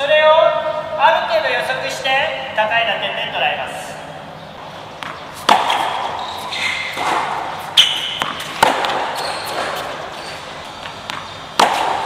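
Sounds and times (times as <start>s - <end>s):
racket hitting tennis ball: 4.7s - 12.0s.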